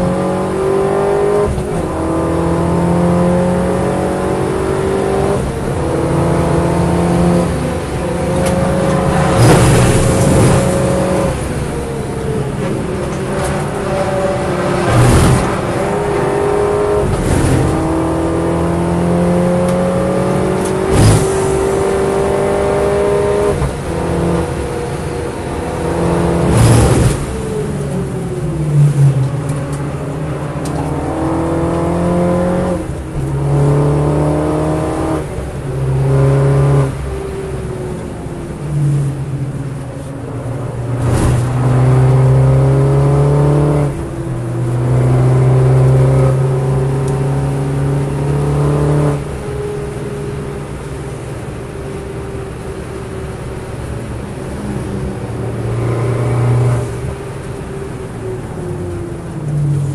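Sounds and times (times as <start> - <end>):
car engine revving through gears: 0.0 - 59.9.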